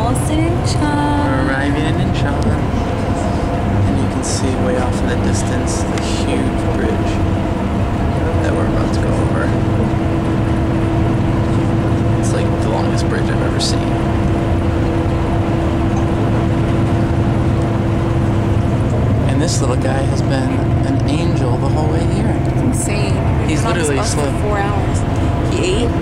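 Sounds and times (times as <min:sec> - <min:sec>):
bus engine and road noise: 0:00.0 - 0:26.0
steady hum: 0:00.0 - 0:26.0.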